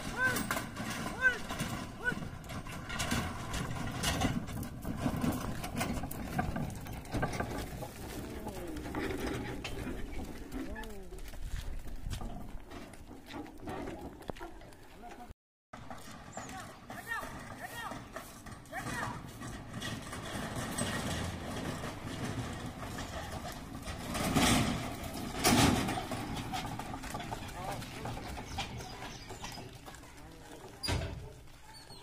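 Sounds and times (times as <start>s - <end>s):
voices outdoors: 0.0s - 4.6s, 5.2s - 32.0s
bullock cart on dirt road: 0.0s - 32.0s.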